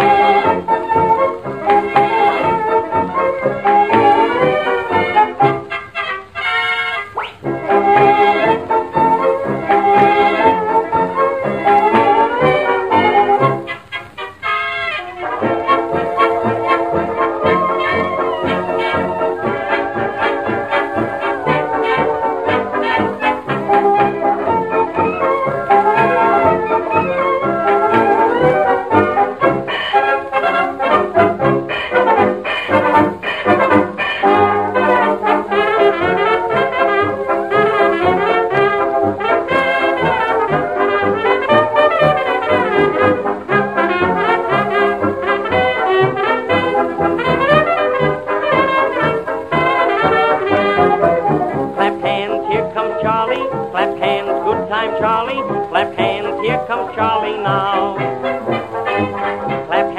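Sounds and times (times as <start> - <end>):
brass-led dance orchestra: 0.0 - 59.9.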